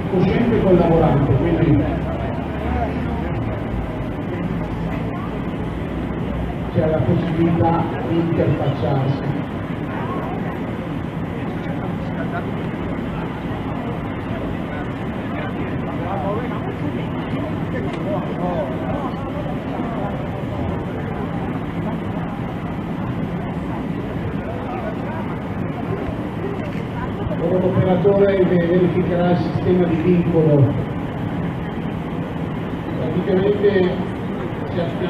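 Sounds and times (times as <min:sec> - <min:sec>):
people talking: 0:00.0 - 0:35.0
vehicle engine idling: 0:00.0 - 0:35.0.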